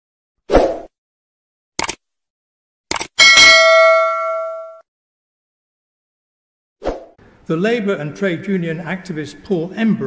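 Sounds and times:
notification bell ding: 3.2 - 4.8.

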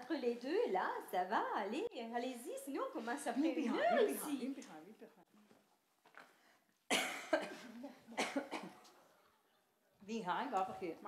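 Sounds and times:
person coughing: 6.9 - 8.8.

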